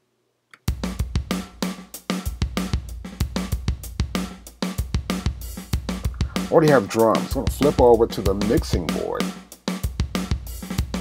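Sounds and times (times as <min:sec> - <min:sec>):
funk drum groove: 0:00.7 - 0:11.0.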